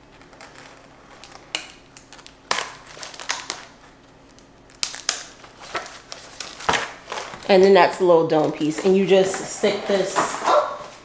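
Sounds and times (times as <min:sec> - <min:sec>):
plastic packaging crinkling: 0:00.0 - 0:10.2.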